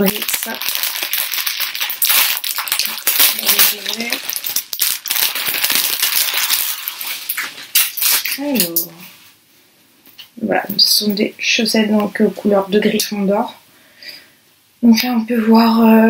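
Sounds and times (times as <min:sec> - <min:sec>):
plastic packaging crinkling: 0:00.0 - 0:08.8.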